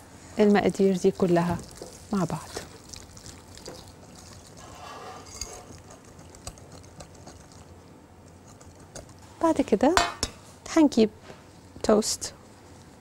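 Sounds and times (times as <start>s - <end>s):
whisk stirring wet mixture: 1.2s - 9.3s.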